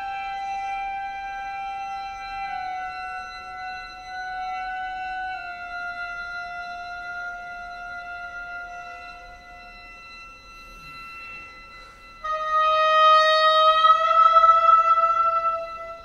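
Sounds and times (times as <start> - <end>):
oboe holding long notes: 0.0 - 16.0.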